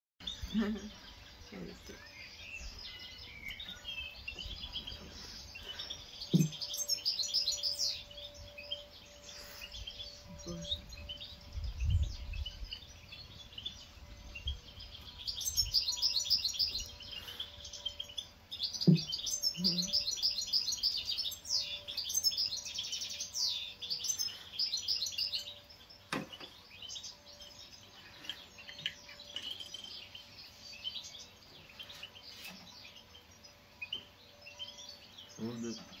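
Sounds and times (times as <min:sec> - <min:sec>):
birds chirping and twittering: 0:00.2 - 0:36.0.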